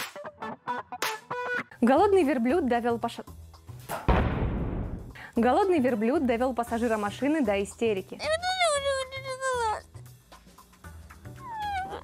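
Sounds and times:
high wailing cry: 8.2s - 10.0s, 11.4s - 12.0s.

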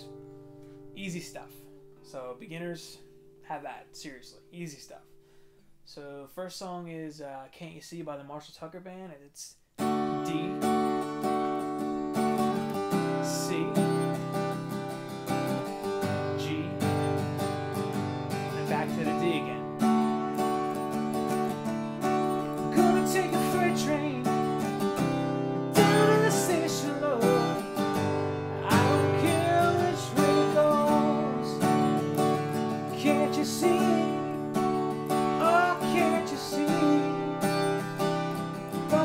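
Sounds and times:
acoustic guitar strumming: 0.0s - 5.6s, 9.8s - 39.0s
wordless vocal: 18.6s - 19.7s, 22.6s - 24.5s, 25.8s - 27.7s, 28.4s - 31.8s, 32.9s - 34.5s, 35.3s - 37.4s.

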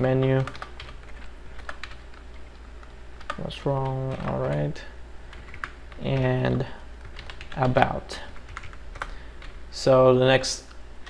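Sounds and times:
steady low hum: 0.0s - 11.0s
keyboard keys clicking: 0.3s - 4.7s, 5.3s - 9.6s.

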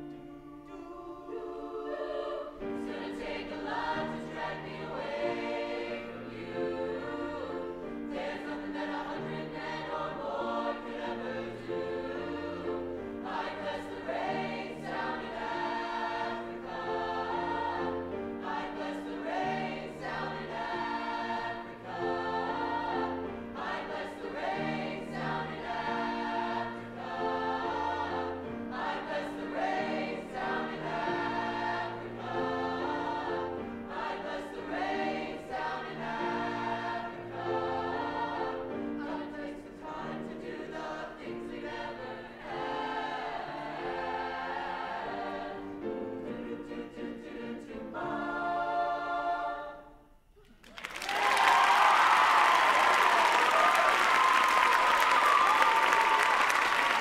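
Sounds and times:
choir singing in harmony: 0.0s - 50.3s, 51.1s - 57.0s.

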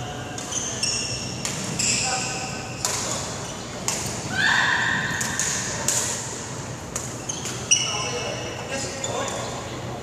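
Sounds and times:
racket hitting shuttlecock: 2.8s - 4.3s, 4.9s - 7.7s
shoe squeaking on wooden floor: 7.1s - 8.4s.

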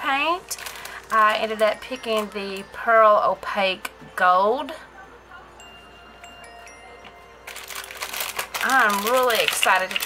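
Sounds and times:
plastic packaging crinkling: 0.1s - 2.7s, 7.4s - 10.0s.

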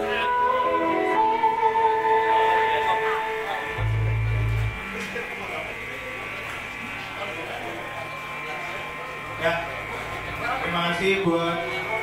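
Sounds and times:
amplifier electrical hum: 0.0s - 12.0s
faint talk: 0.0s - 12.0s.

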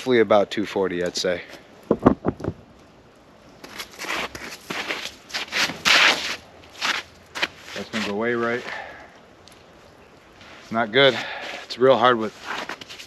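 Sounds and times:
footsteps crunching in snow: 3.6s - 8.8s, 10.4s - 13.0s.

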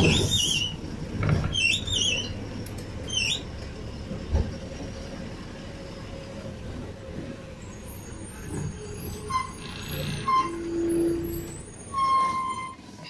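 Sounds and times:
bus engine rumbling: 0.0s - 13.0s.

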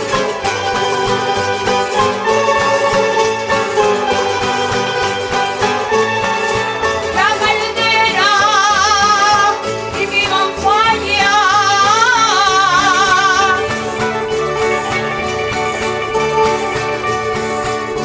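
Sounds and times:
strummed and plucked strings: 0.0s - 18.0s.

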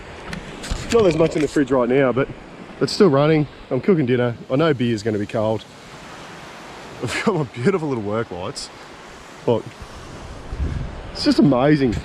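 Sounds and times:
wind rumbling on microphone: 0.0s - 3.8s, 9.0s - 12.0s
steady outdoor hiss: 0.0s - 12.0s.

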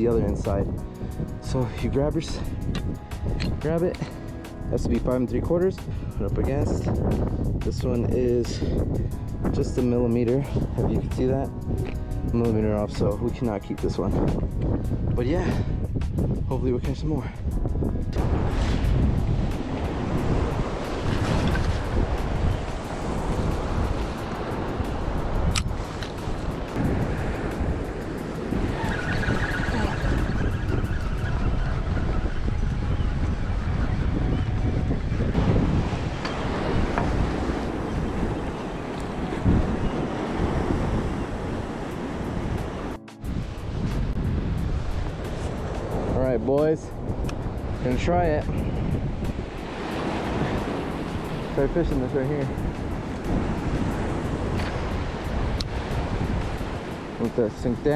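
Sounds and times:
wind buffeting microphone: 0.0s - 57.9s.

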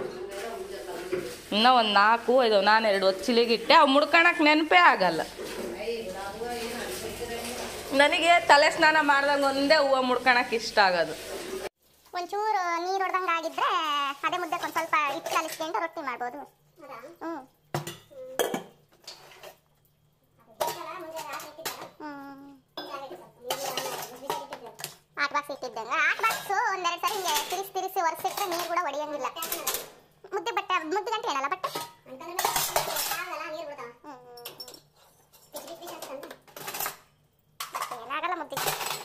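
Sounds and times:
steel dishes clanking: 22.8s - 25.0s, 26.2s - 30.0s, 31.6s - 33.4s, 34.4s - 39.0s.

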